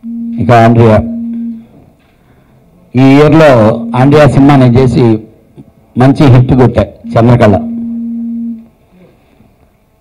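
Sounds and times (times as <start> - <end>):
low microphone hum: 0.0 - 10.0.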